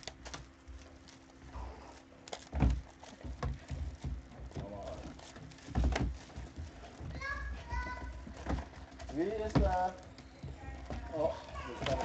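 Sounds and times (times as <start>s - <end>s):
wrappers and cards crinkling: 0.0s - 12.0s.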